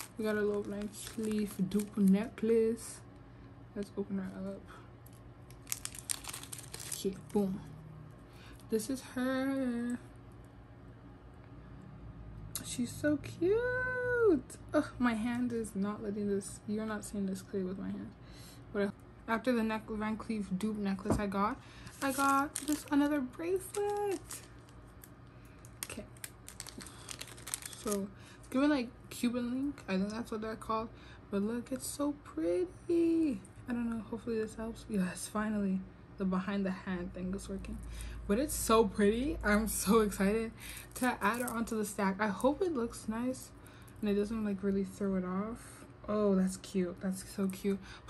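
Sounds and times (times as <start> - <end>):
packet crackling and rustling: 0.0 - 2.4, 5.5 - 7.4, 21.8 - 28.1, 40.9 - 41.7
plastic bag crinkling: 0.0 - 2.4, 5.5 - 7.4, 21.8 - 28.2, 40.9 - 41.7.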